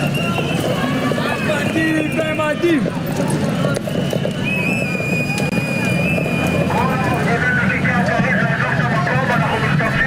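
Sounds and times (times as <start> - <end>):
crowd noise: 0.0 - 10.0
horse hooves clattering on pavement: 0.0 - 10.0
protesters shouting: 0.0 - 10.0.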